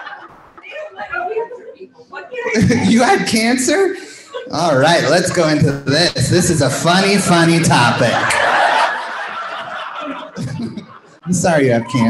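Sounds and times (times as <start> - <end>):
audience laughing: 4.5 - 11.5.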